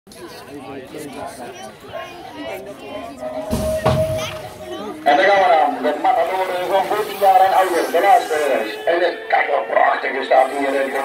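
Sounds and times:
spectators chattering: 0.1s - 11.0s.

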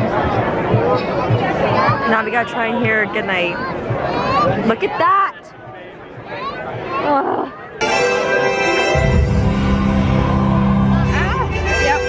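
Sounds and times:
show music: 7.8s - 12.0s.

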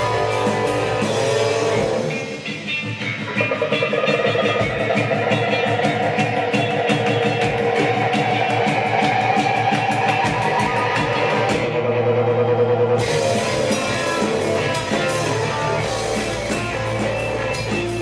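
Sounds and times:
drum kit: 0.0s - 18.0s
electric guitars: 0.0s - 18.0s
keyboard: 0.0s - 18.0s.

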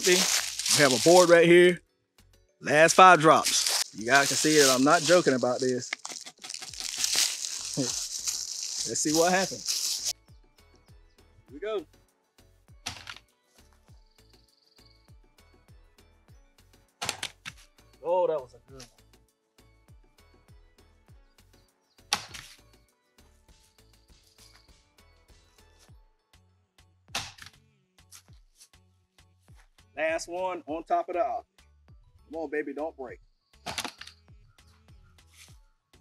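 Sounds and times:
pistol dropped onto board: 33.7s - 34.2s.

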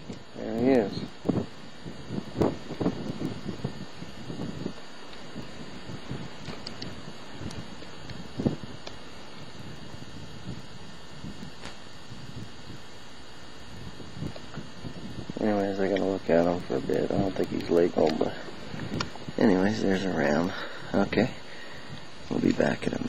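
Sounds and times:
wind buffeting microphone: 0.0s - 13.0s, 13.6s - 23.0s.

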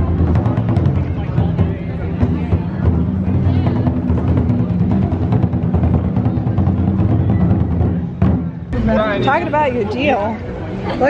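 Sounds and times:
large drums beating rapidly: 0.0s - 8.9s.

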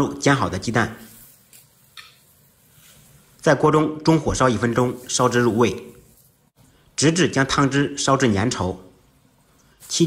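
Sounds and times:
sauce sizzling in a wok: 1.0s - 3.4s.

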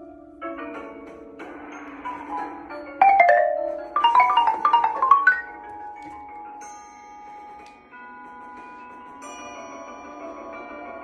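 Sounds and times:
mallet keyboard notes ringing: 3.0s - 6.0s.

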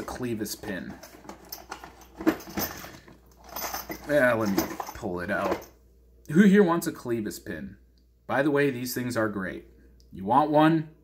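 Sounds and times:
hands rummaging through small items: 0.0s - 5.7s.

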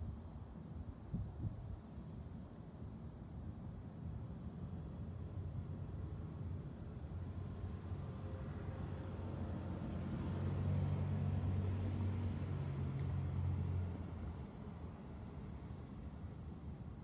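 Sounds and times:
motor vehicle engine hum: 7.4s - 17.0s.

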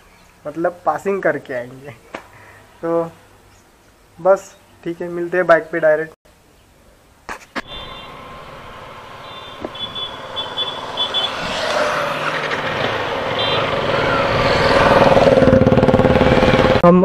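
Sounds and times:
rushing wind: 7.6s - 16.8s
motorcycle engine accelerating: 7.6s - 16.9s.

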